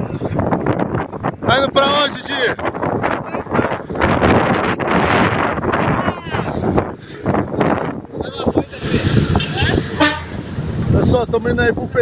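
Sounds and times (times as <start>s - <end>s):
truck rumbling: 0.0s - 12.0s
truck horn toot: 8.8s - 10.4s.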